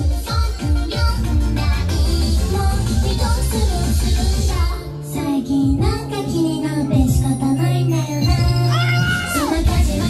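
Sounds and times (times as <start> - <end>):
pop song over sound system: 0.0 - 10.0.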